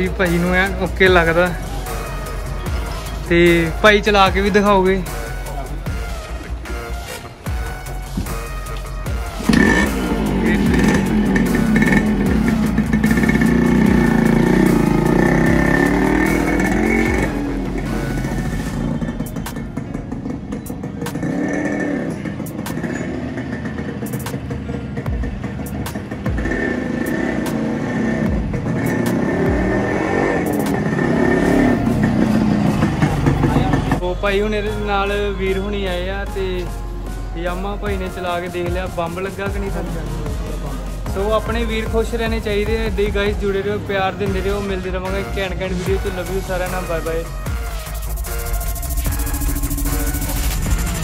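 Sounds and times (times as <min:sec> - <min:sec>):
motorcycle engine revving: 0:00.0 - 0:34.0, 0:37.9 - 0:51.0
background music: 0:00.0 - 0:51.0.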